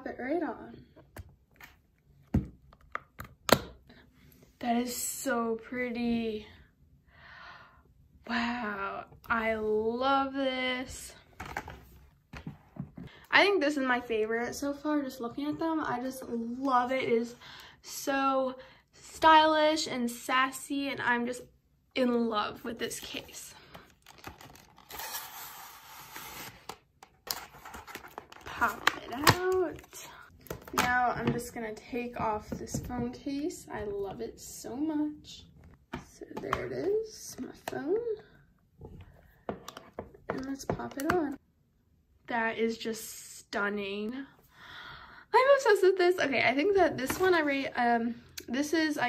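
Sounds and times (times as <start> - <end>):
packaging rustling: 23.9 - 30.0.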